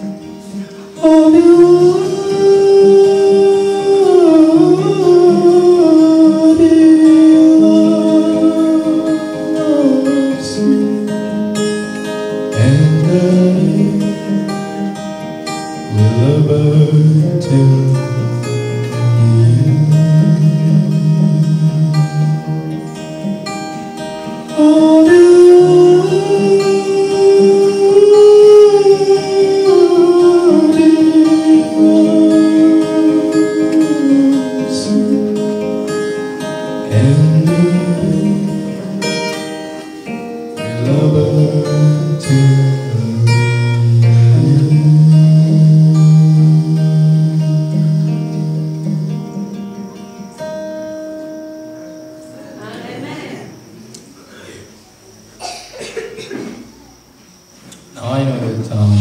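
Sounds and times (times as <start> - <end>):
acoustic guitar: 0.0 - 59.0
man singing slow song: 0.4 - 11.9, 12.5 - 22.8, 24.3 - 49.7, 57.8 - 59.0.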